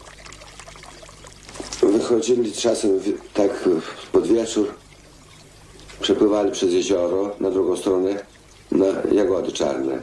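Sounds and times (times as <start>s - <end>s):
water lapping at shore: 0.0s - 9.4s.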